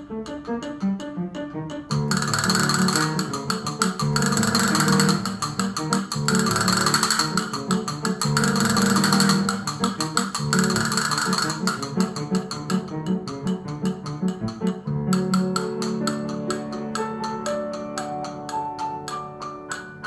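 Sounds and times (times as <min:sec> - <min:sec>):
instrumental accompaniment: 0:00.0 - 0:20.0
castanets clicking and rolling: 0:01.9 - 0:20.0.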